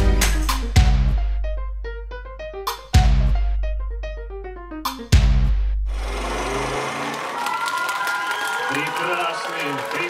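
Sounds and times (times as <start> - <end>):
audience applauding and cheering: 6.0 - 10.0.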